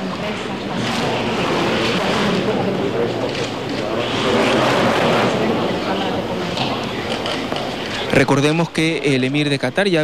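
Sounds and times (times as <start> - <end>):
loud noisy background: 0.0 - 10.0.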